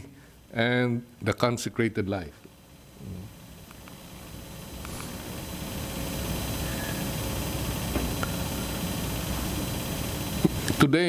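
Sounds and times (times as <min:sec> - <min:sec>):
room hiss: 0:00.0 - 0:11.0
low hum: 0:02.0 - 0:10.8.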